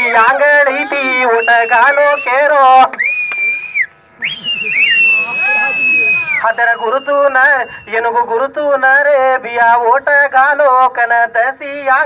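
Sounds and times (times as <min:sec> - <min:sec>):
high-pitched whistle: 0:03.0 - 0:07.9.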